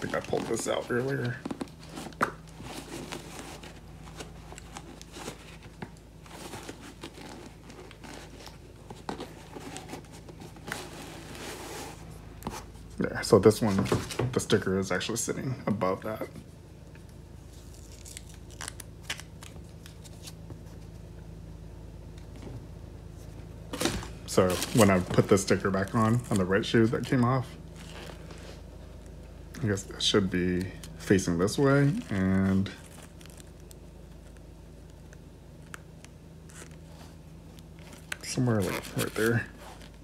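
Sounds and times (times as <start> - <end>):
sneaker handling rustling: 0.0 - 14.8, 22.3 - 29.2
faint steady hum: 0.0 - 40.0.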